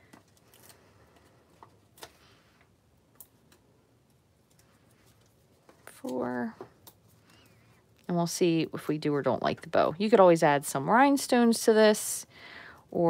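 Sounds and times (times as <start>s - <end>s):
paper clicks and crinkles: 0.0s - 8.1s.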